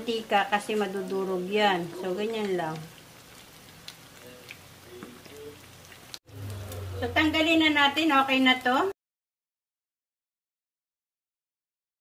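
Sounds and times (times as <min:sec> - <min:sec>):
hot oil sizzling: 0:00.0 - 0:09.0
oil popping: 0:00.6 - 0:07.4.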